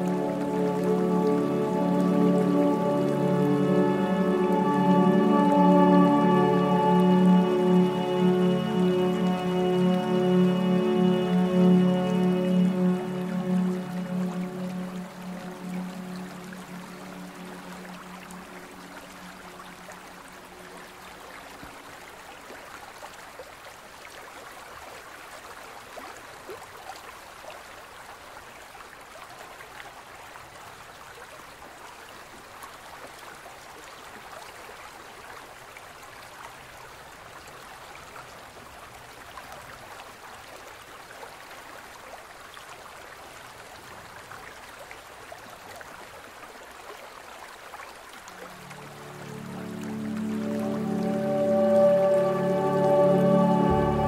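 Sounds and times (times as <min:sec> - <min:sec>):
low meditation music: 0:00.0 - 0:21.5, 0:48.3 - 0:54.0.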